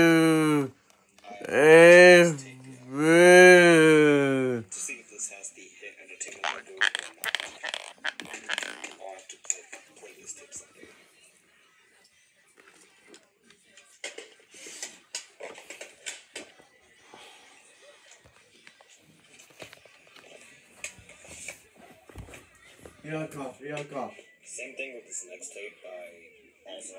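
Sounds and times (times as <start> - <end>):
faint television speech: 0.0 - 26.9
television music: 0.0 - 26.9.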